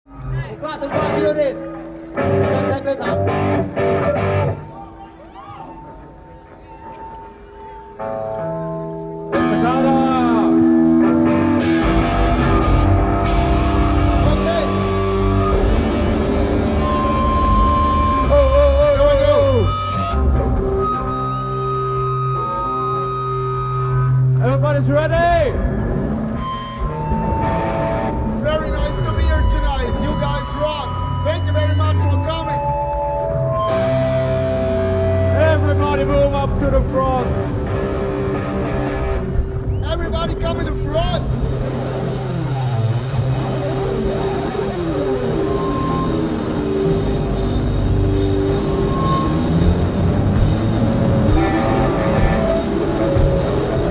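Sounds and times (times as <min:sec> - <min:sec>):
electric guitar chords strummed: 0:00.1 - 0:04.6, 0:08.0 - 0:53.9.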